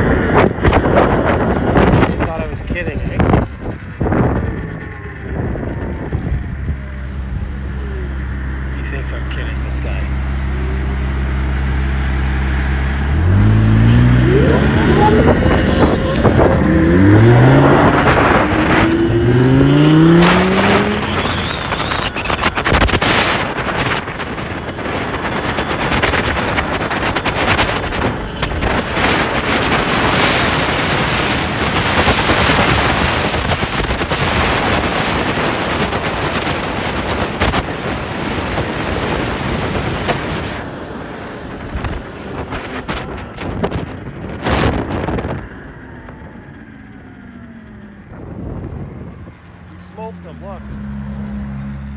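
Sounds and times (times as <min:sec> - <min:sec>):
sports car engine revving: 0:00.0 - 0:51.9
wind and road noise: 0:00.0 - 0:51.9.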